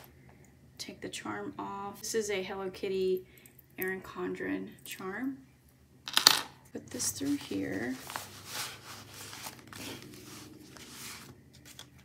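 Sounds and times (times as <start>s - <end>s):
plastic pockets rustling: 7.1s - 12.0s.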